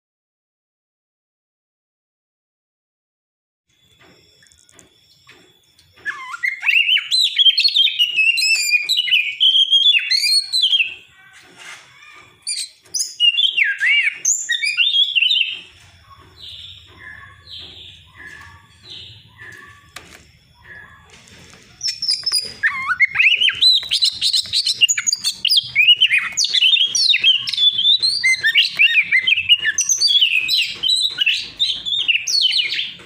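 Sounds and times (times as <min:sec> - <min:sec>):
bird singing whistles and warbles: 0:04.5 - 0:11.1, 0:12.0 - 0:33.0.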